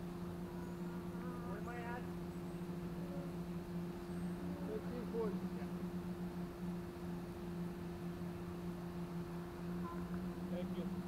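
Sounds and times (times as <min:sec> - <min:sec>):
steady low two-tone hum: 0:00.0 - 0:11.0.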